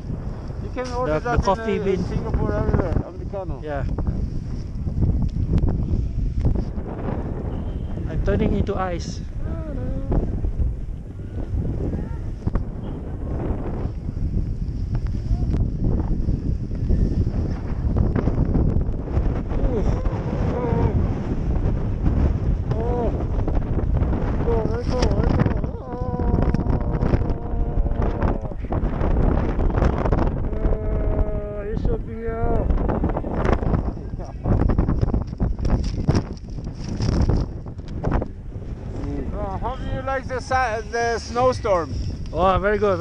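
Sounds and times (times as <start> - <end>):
wind buffeting microphone: 0.0 - 43.0.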